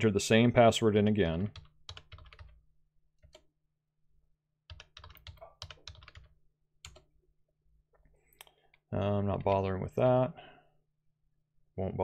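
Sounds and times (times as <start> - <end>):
computer keyboard typing: 1.5 - 2.6, 3.2 - 3.5, 4.7 - 7.1.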